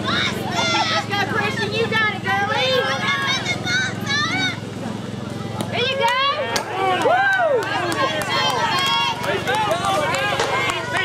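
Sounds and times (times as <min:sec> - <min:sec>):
people calling and cheering: 0:00.0 - 0:11.0.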